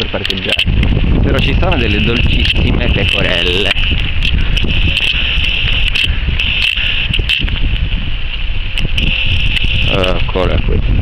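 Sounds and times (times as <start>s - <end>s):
wind rumble on microphone: 0.0s - 11.0s
camera handling noise: 2.1s - 7.9s.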